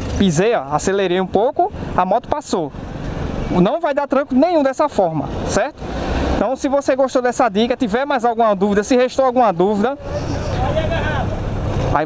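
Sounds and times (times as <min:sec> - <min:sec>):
motorcycle engine running: 0:00.0 - 0:00.7.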